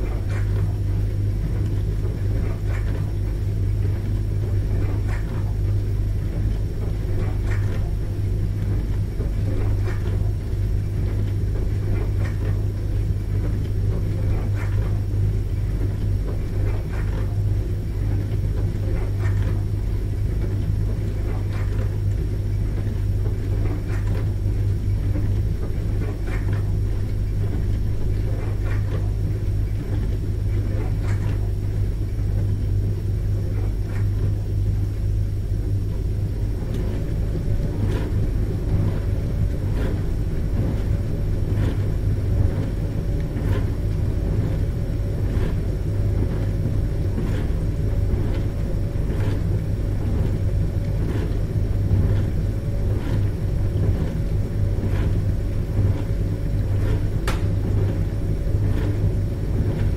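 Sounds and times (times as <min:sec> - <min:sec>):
dishwasher running: 0:00.0 - 0:59.9.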